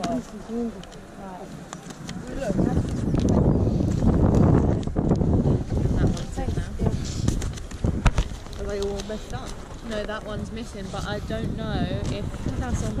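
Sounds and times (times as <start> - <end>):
people's voices: 0.0 - 13.0
wind buffeting microphone: 0.0 - 13.0.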